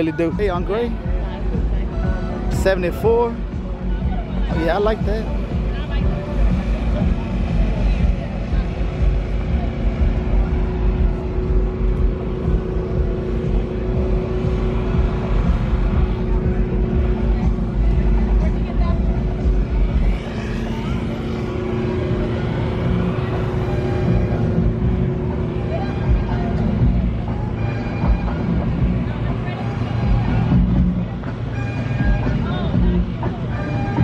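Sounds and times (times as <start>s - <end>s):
car engine running: 0.0s - 34.0s.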